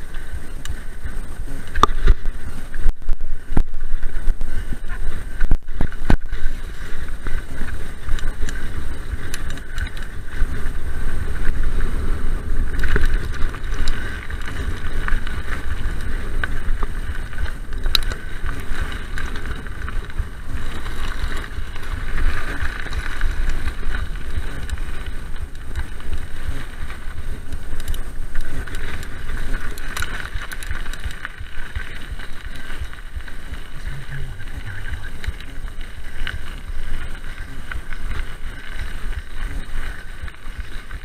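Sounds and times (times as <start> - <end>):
bike knocking and rattling: 0.0 - 41.0
bike tyre rumble on gravel: 0.0 - 41.0
wind buffeting microphone: 0.0 - 41.0.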